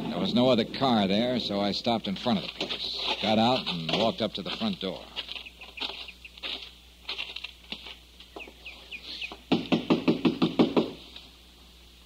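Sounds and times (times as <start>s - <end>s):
footstep clicks: 2.0s - 9.4s
knocks on a door: 9.5s - 11.0s.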